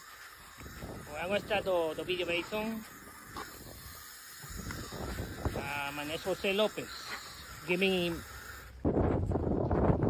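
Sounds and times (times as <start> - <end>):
hose nozzle spraying: 0.0 - 8.9
wind on microphone: 0.5 - 6.3, 7.9 - 10.0.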